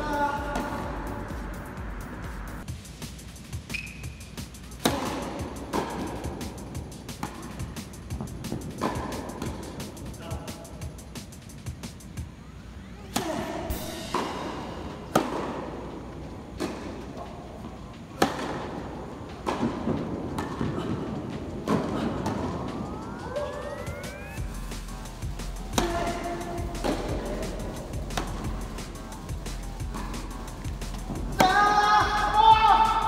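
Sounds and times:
background music: 0:00.0 - 0:12.4, 0:13.5 - 0:16.1, 0:19.5 - 0:33.0
tennis balls struck by rackets: 0:04.7 - 0:10.2, 0:13.1 - 0:22.9, 0:25.1 - 0:32.9.

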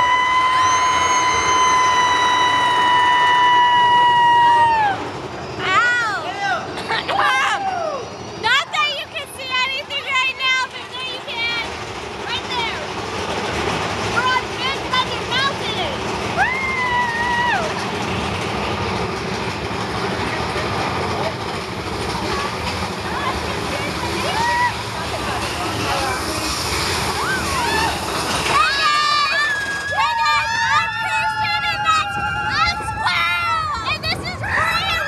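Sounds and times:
riders screaming: 0:00.0 - 0:08.6, 0:15.8 - 0:18.0, 0:23.9 - 0:35.0
roller coaster rumble: 0:00.0 - 0:35.0
riders squealing: 0:23.0 - 0:35.0.

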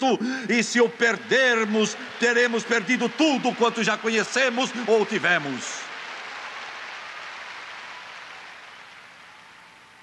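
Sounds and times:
congregation applauding: 0:00.5 - 0:10.0.

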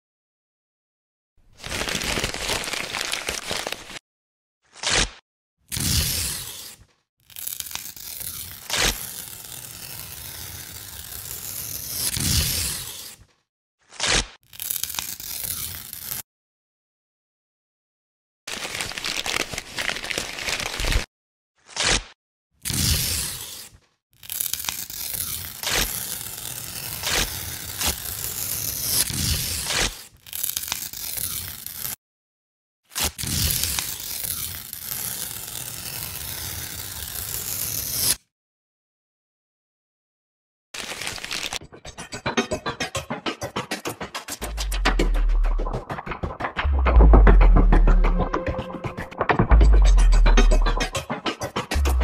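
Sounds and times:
harsh rushing tearing noise: 0:04.7 - 0:13.2, 0:13.9 - 0:16.2, 0:21.7 - 0:32.0, 0:33.0 - 0:38.2, 0:44.2 - 0:52.0.

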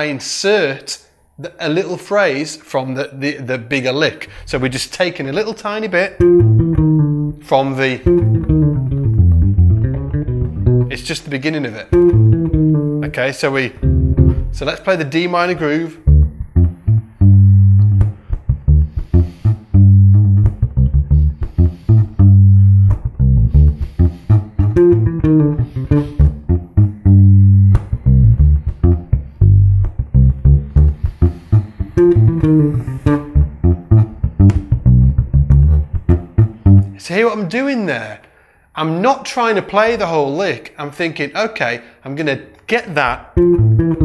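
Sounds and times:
electric bass guitar groove: 0:06.2 - 0:11.3, 0:11.9 - 0:14.8, 0:15.9 - 0:37.0, 0:43.3 - 0:44.0.

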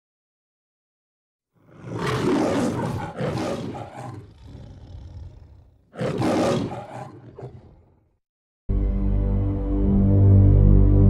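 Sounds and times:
lion roaring: 0:01.6 - 0:08.1.

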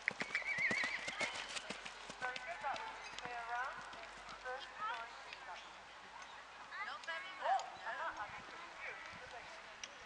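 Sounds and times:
horse hooves cantering on grass: 0:00.0 - 0:05.6.

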